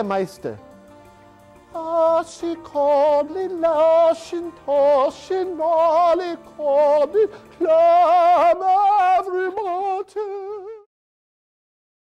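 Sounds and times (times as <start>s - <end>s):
person singing with wide vibrato: 1.7s - 10.9s.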